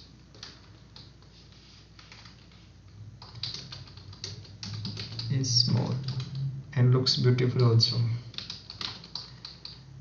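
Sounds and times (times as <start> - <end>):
keyboard typing: 0.0 - 6.5, 7.2 - 9.9.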